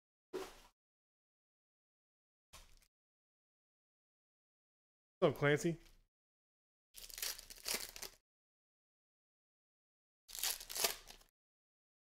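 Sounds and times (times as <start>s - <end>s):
foil wrapper crinkling: 7.0s - 8.2s, 10.3s - 11.3s.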